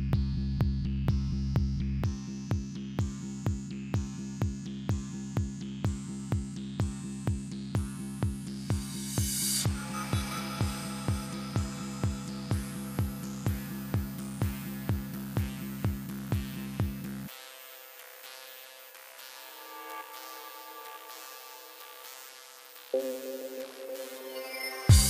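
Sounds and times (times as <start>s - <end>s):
four-on-the-floor kick drum: 0.0s - 17.3s
synth bass: 0.0s - 17.3s, 19.4s - 25.0s
synth pads: 7.8s - 25.0s.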